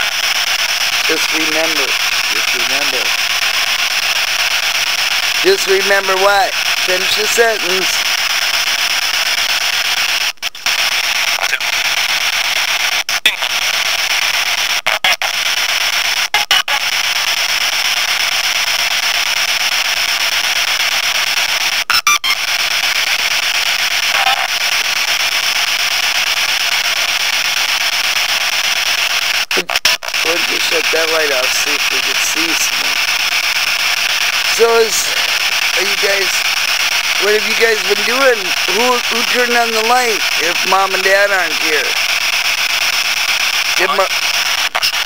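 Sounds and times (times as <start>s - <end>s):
radio static hiss: 0.0s - 45.0s
faint voice fragments: 1.1s - 3.1s, 30.2s - 33.1s, 34.4s - 36.4s, 37.2s - 42.0s, 43.8s - 44.1s.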